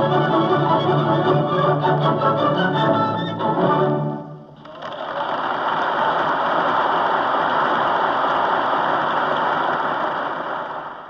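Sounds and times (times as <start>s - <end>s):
audience applauding: 4.6s - 11.0s.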